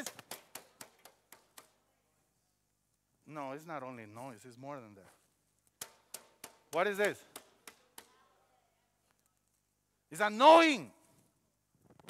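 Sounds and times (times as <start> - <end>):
sharp clacks struck by hand: 0.0 - 1.8, 5.8 - 8.2.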